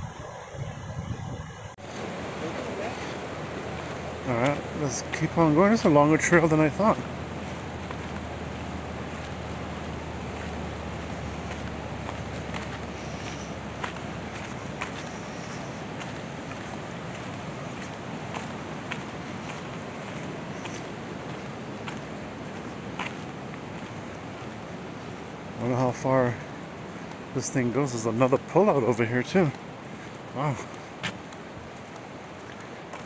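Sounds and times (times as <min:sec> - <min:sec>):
footsteps on dirt trail: 0:01.8 - 0:33.0
river rushing over rocks: 0:01.8 - 0:33.0.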